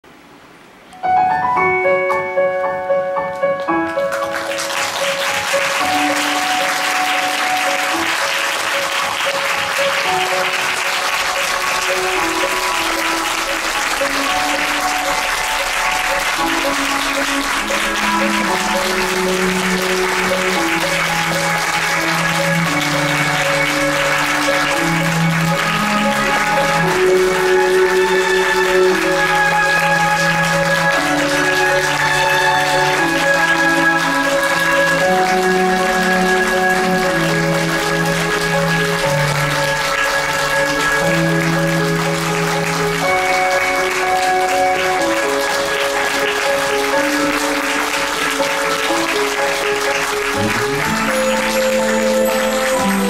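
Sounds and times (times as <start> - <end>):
instrumental music: 0.9 - 53.0
audience applauding: 3.3 - 53.0.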